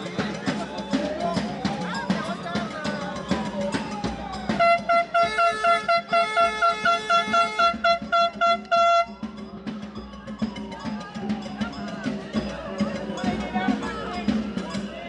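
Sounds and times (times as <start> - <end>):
drumming: 0.0 - 15.0
air horn short blasts: 4.6 - 9.1.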